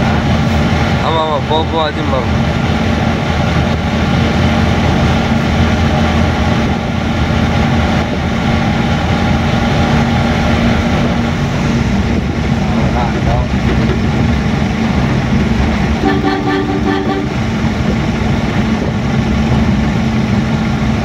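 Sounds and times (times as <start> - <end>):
truck engine drone: 0.0 - 21.0.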